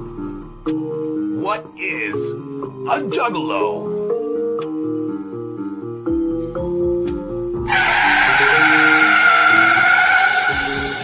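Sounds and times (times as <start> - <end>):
tire screech: 7.7 - 11.0.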